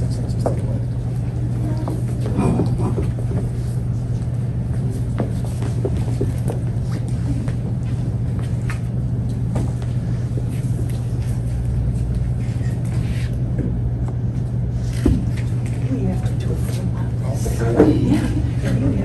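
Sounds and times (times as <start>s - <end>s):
steady low hum: 0.0s - 19.0s.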